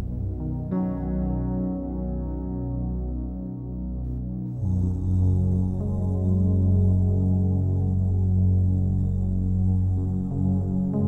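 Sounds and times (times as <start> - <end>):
deep ambient drone: 0.0 - 11.0.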